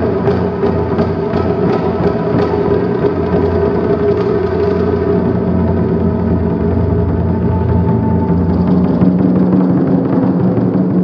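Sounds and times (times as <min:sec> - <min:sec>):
drum strikes: 0:00.0 - 0:11.0
taiko drums rolling: 0:00.0 - 0:11.0.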